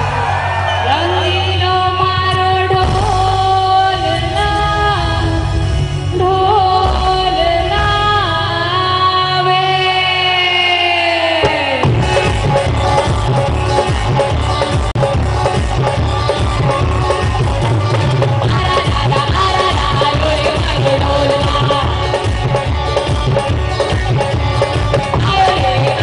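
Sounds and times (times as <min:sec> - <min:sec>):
live band with keyboard and drums: 0:00.0 - 0:26.0
woman singing into microphone: 0:00.8 - 0:12.8, 0:18.2 - 0:23.4, 0:25.1 - 0:26.0.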